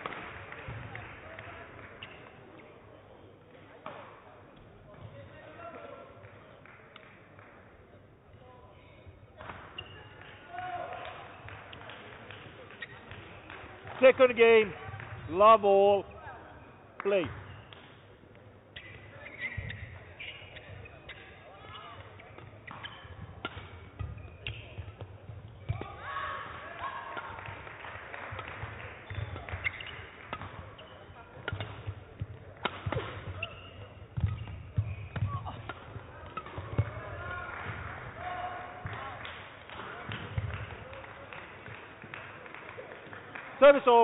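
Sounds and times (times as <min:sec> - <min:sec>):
racket striking shuttlecock: 0:17.3 - 0:27.6, 0:28.2 - 0:37.0.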